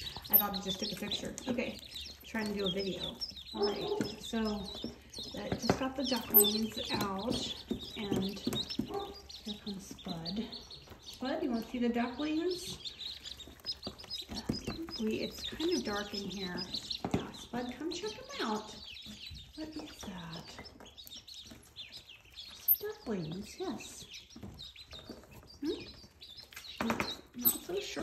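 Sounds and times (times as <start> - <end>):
ducklings peeping: 0.0 - 28.0.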